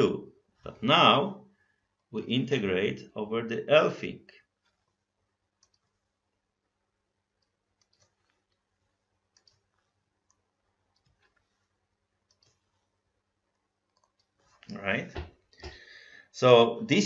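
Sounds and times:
faint scattered clicks: 5.6s - 6.0s, 7.4s - 8.6s, 9.3s - 9.6s, 12.3s - 12.6s.

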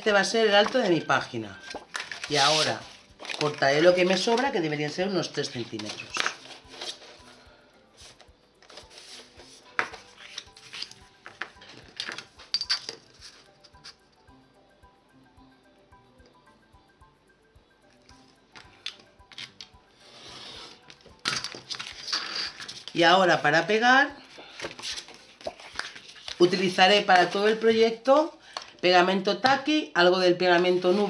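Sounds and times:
faint background music: 0.0s - 31.0s
card rustling: 1.6s - 7.4s, 8.0s - 14.0s, 21.0s - 23.1s, 24.3s - 27.8s
metal ruler clinking: 11.9s - 13.1s.

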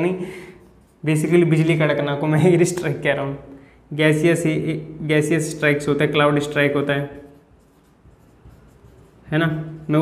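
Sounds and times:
marker scratching on whiteboard: 0.6s - 1.8s, 6.4s - 10.0s.

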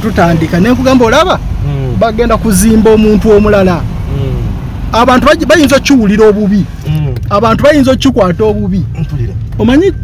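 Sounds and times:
car engine and road noise: 0.0s - 10.0s
person talking: 0.3s - 7.6s.

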